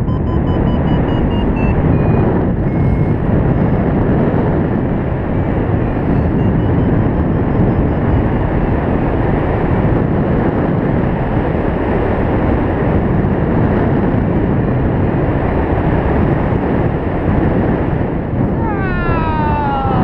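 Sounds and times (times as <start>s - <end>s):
faint short beeps: 0.0s - 3.8s
loud wind over microphone: 0.0s - 20.0s.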